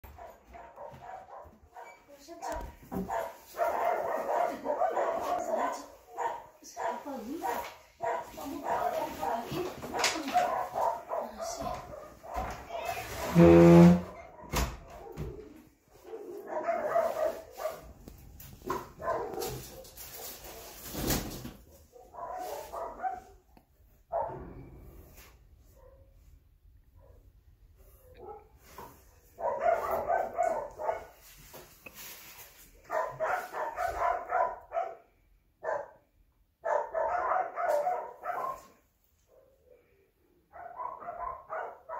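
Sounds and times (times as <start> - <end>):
dog barking: 0.0 - 2.1, 2.9 - 13.4, 14.0 - 18.0, 18.6 - 20.9, 21.6 - 24.5, 25.7 - 26.2, 26.9 - 27.4, 28.0 - 31.2, 32.8 - 39.9, 40.5 - 41.9.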